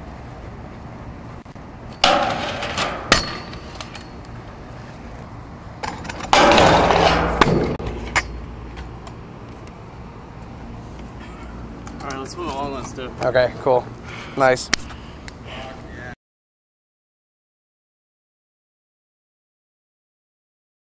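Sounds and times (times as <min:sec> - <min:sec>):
scooter landing clacks: 0:05.8 - 0:08.3.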